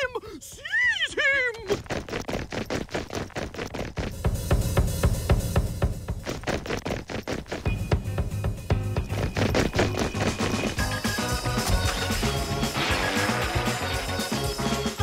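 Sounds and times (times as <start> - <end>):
fast drum-driven music: 3.8 - 15.0.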